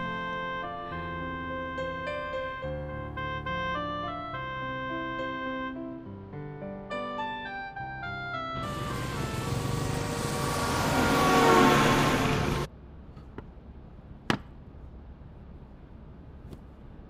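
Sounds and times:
bus passing: 0:00.0 - 0:04.4, 0:08.1 - 0:17.0
piano notes: 0:00.0 - 0:12.7
motorbikes passing: 0:08.6 - 0:12.7.

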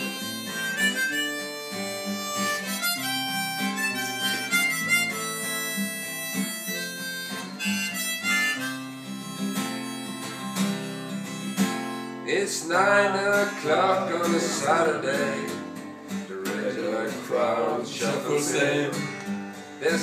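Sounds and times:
harmonica melody: 0:00.0 - 0:20.0
strummed acoustic guitar: 0:00.0 - 0:20.0.

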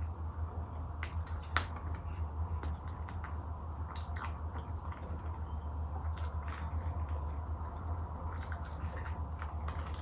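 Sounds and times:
low steady hum: 0:00.0 - 0:10.0
person chewing food: 0:01.0 - 0:10.0.

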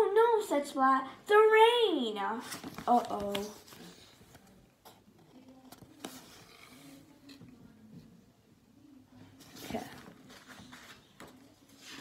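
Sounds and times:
book page turning rustle: 0:02.4 - 0:04.6, 0:05.4 - 0:07.4, 0:09.4 - 0:12.0.

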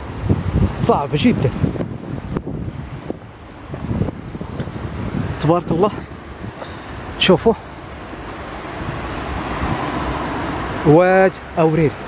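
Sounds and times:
river water rushing: 0:00.0 - 0:12.0
wind buffeting microphone: 0:00.0 - 0:12.0.

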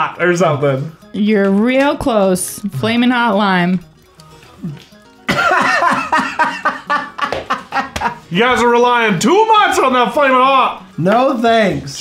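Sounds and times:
man laughing loudly: 0:05.3 - 0:08.2.

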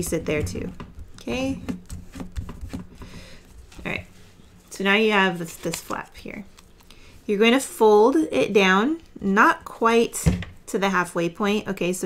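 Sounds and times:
paper crinkling and clicking: 0:05.4 - 0:06.7.

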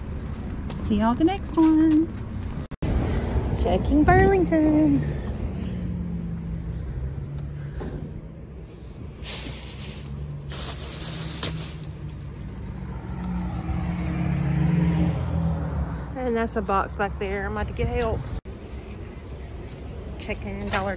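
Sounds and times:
vehicle engine humming: 0:00.0 - 0:20.9
bursts of hiss: 0:09.2 - 0:12.0.

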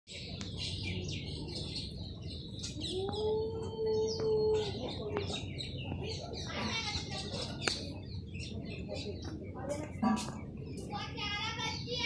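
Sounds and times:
small birds chirping and twittering: 0:00.1 - 0:12.0.

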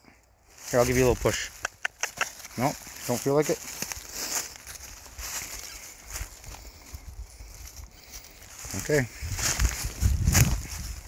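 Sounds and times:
dry leaves rustling and crackling: 0:00.5 - 0:11.0.

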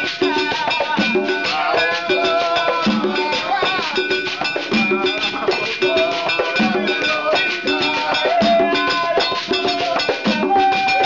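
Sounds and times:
hand drums: 0:00.0 - 0:11.0
people singing: 0:00.0 - 0:11.0
ringing metal bell: 0:00.0 - 0:11.0.

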